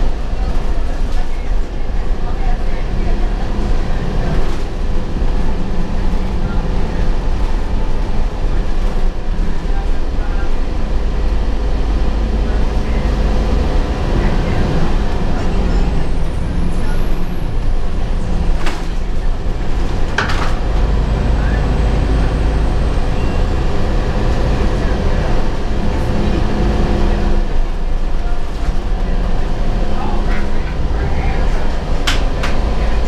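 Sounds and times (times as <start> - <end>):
bus engine and road rumble: 0.0 - 33.0.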